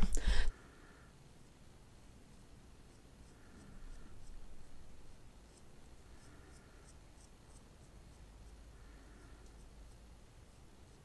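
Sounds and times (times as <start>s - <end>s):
brush wand stroking eyebrows: 1.4s - 11.0s.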